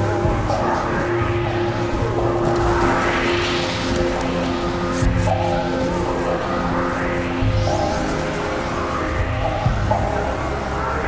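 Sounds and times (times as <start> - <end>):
electronic noise drone music: 0.0 - 11.0.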